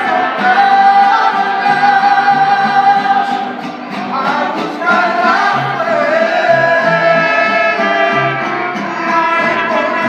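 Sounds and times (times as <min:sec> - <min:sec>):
man singing: 0:00.0 - 0:10.0
violins and guitars playing: 0:00.0 - 0:10.0.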